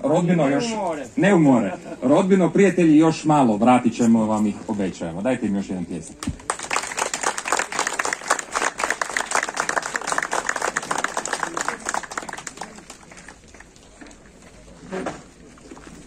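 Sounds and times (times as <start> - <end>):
audience applause: 6.4 - 14.0.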